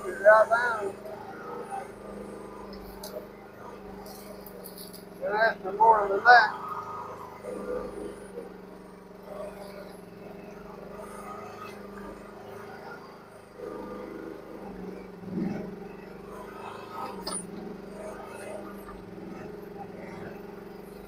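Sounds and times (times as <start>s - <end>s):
distant excavator engine running: 0.0s - 21.0s.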